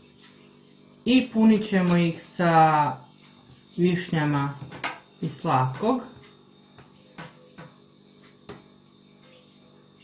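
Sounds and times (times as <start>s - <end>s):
faint electrical hum: 0.0s - 10.0s.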